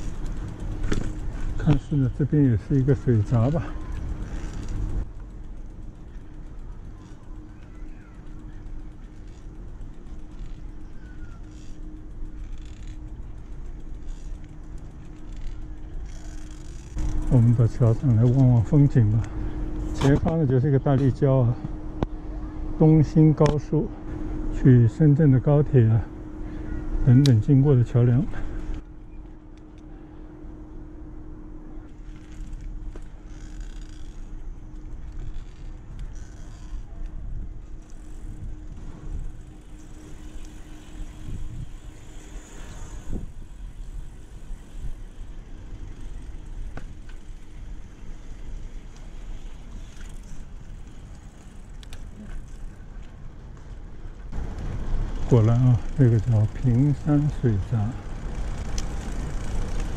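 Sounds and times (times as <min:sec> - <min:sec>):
bicycle tyre noise on path: 0:00.0 - 0:59.9
faint steady hum: 0:00.0 - 0:59.9
wind rumble on microphone: 0:34.4 - 0:45.4.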